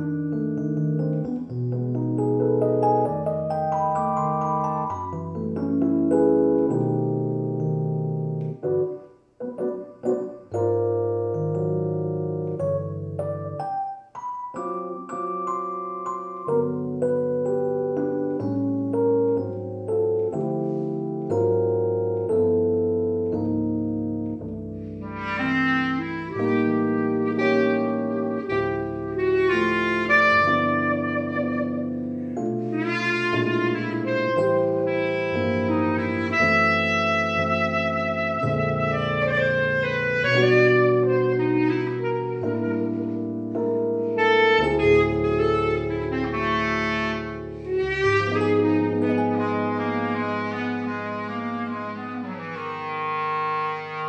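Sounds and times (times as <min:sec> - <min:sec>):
piano chords: 0:00.0 - 0:54.0
reed instrument melody: 0:00.0 - 0:54.0.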